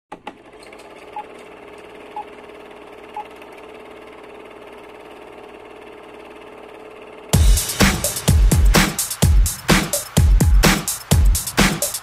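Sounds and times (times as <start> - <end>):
film projector whirring: 0.1 - 12.0.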